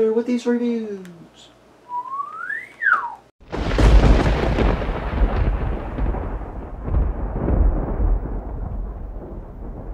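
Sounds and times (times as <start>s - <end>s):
thunder rumbling: 3.4s - 9.9s.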